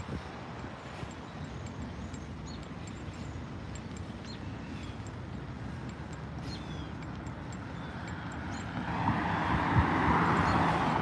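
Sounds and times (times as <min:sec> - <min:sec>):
road traffic rumble: 0:00.0 - 0:11.0
vehicle approaching: 0:00.0 - 0:11.0.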